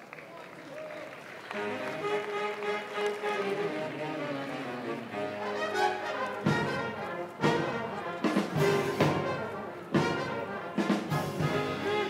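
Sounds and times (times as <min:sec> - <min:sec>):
brass sustained chords: 0:01.5 - 0:12.0.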